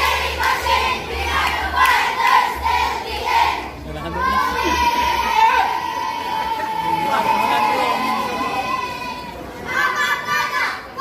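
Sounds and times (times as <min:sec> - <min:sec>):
children chanting a cheer: 0:00.0 - 0:11.0.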